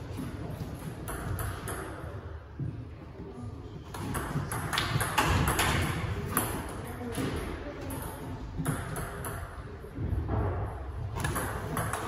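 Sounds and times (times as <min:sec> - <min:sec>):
table tennis ball hits: 0:00.9 - 0:02.2, 0:03.9 - 0:07.4, 0:08.0 - 0:09.6, 0:11.2 - 0:12.0.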